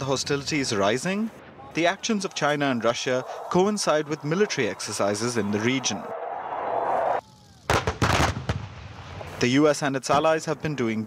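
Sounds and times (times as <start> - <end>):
howitzers firing blasts: 1.3 - 9.4.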